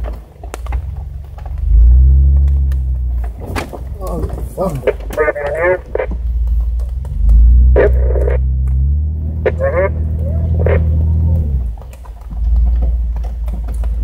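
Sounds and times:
off-road vehicle engine droning: 0.0s - 14.0s.

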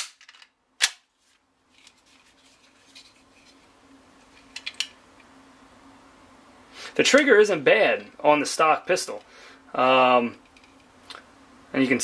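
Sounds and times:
steady low hum: 0.2s - 12.0s.

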